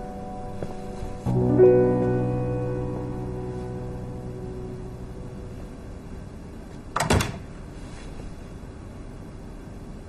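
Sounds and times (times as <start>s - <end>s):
door thudding shut: 7.0s - 7.4s.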